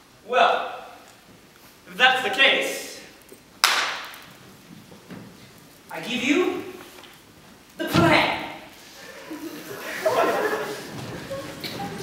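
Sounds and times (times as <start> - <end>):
sharp smack echoing: 3.6 - 4.2.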